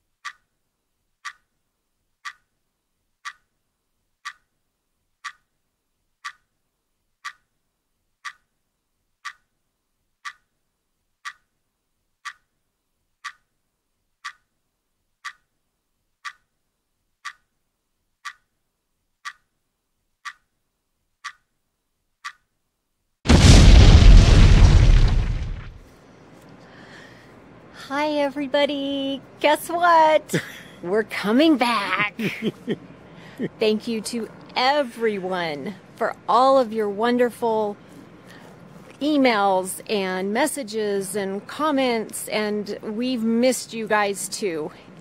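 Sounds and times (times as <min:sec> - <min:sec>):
clock ticking: 0:00.2 - 0:00.5, 0:01.2 - 0:01.5, 0:02.2 - 0:02.5, 0:03.2 - 0:03.5, 0:04.2 - 0:04.5, 0:05.2 - 0:05.5, 0:06.2 - 0:06.5, 0:07.2 - 0:07.5, 0:08.2 - 0:08.5, 0:09.2 - 0:09.5, 0:10.2 - 0:10.5, 0:11.2 - 0:11.5, 0:12.2 - 0:12.6, 0:13.2 - 0:13.6, 0:14.2 - 0:14.6, 0:15.2 - 0:15.6, 0:16.2 - 0:16.6, 0:17.2 - 0:17.6, 0:18.2 - 0:18.6, 0:19.2 - 0:19.6, 0:20.2 - 0:20.6, 0:21.2 - 0:21.6, 0:22.2 - 0:22.5
explosion boom: 0:23.3 - 0:25.8.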